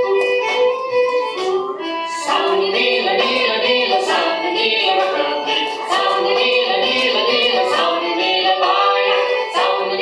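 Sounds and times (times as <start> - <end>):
country dance music: 0.0 - 10.0.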